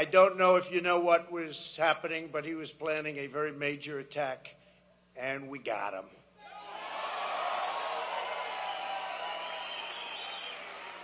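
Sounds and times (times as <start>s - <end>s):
audience cheering: 6.4s - 11.0s
audience applause: 6.6s - 11.0s.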